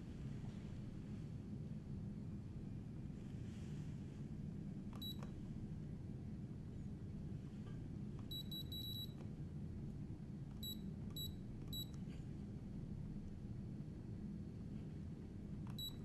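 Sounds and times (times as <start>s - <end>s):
steady low hum: 0.0s - 16.0s
remote controller key beeps: 5.0s - 5.3s, 8.2s - 9.2s, 10.6s - 12.0s, 15.7s - 16.0s.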